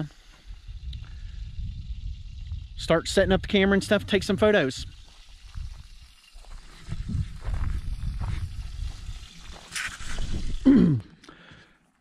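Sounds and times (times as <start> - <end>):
wind buffeting microphone: 0.4 - 10.6.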